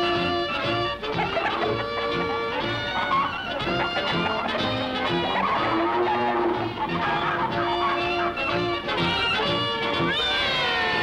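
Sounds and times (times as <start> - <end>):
orchestral cartoon music: 0.0 - 11.0
squawking bird calls: 0.3 - 11.0.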